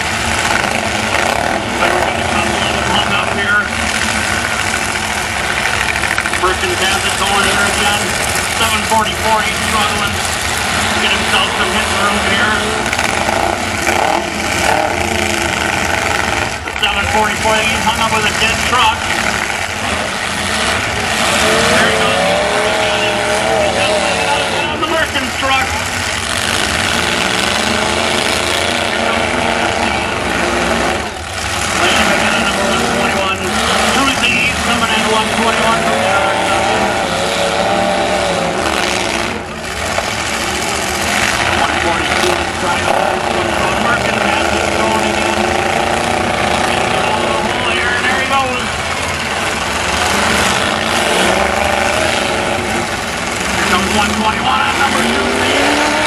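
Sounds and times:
truck engines revving hard: 0.0 - 56.0.

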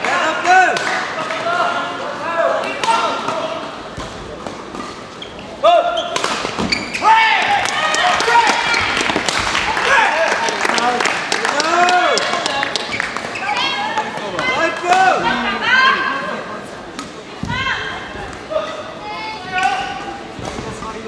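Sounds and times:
voices in a hall: 0.0 - 21.0
shoes squeaking on floor: 4.7 - 7.2.

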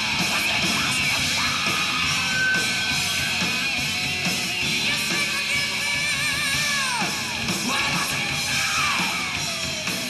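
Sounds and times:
heavy metal band playing: 0.0 - 10.0.

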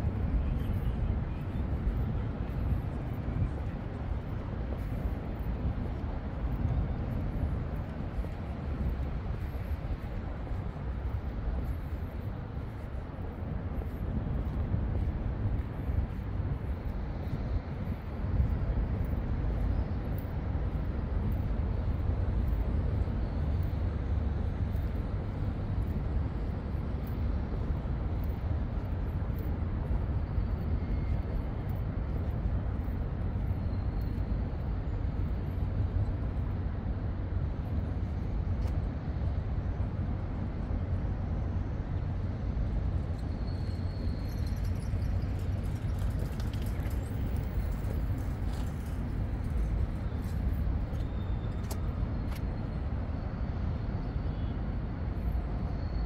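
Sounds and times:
low city rumble: 0.0 - 56.0.

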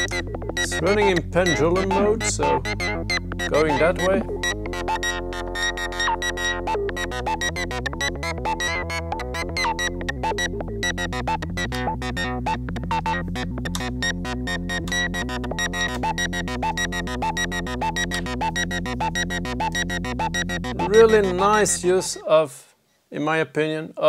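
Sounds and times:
synthesizer sequenced pattern: 0.0 - 22.3.

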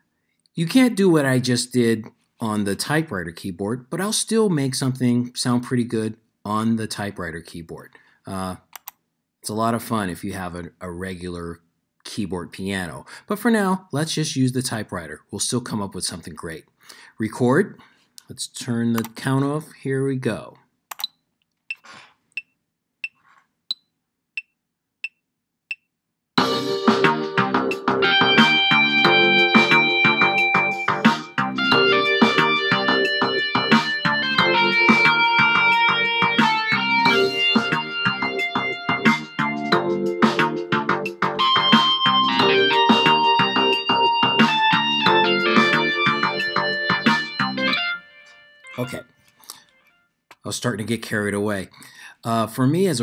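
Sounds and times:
rock lead guitar: 26.4 - 48.5
backing tracks playing loudly: 26.4 - 49.2.

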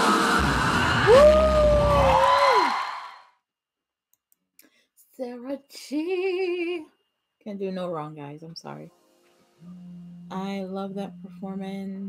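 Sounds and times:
woman singing long high note: 9.6 - 12.0.

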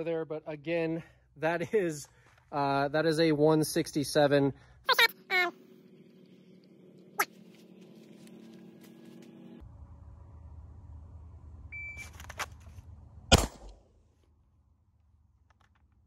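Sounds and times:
rustles and clicks of draw: 12.0 - 12.9
pistol shot: 13.3 - 13.9.

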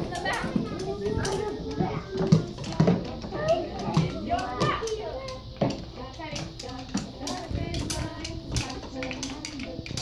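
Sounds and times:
children chattering: 0.0 - 10.0
wooden rhythm sticks clicking: 0.0 - 10.0.

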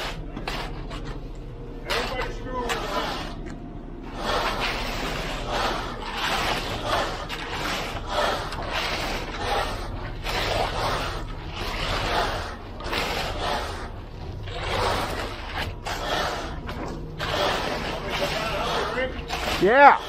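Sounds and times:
low steady hum: 0.0 - 20.0
screed board scraping wet concrete: 0.0 - 20.0.

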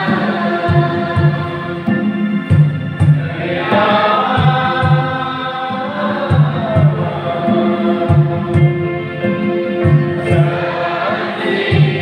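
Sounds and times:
steady low beat: 0.0 - 5.6, 6.2 - 12.0
congregation singing a hymn: 0.0 - 12.0.

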